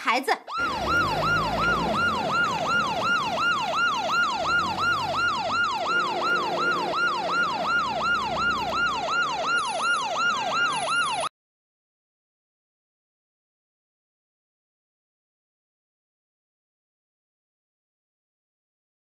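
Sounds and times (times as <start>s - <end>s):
police car siren wailing: 0.5s - 11.3s
low vehicle rumble: 0.6s - 10.6s.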